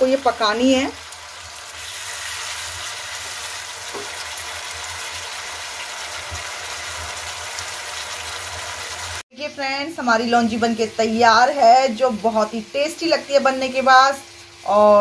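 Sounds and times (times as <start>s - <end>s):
food sizzling in frying pan: 0.0s - 15.0s.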